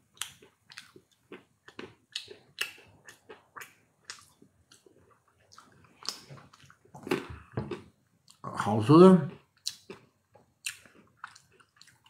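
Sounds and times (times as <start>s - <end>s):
chewing nuts crunches: 0.1s - 8.4s, 9.3s - 12.0s.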